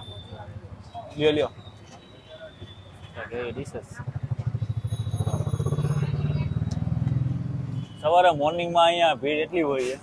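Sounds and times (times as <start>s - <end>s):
motorcycle engine puttering: 4.0s - 7.7s.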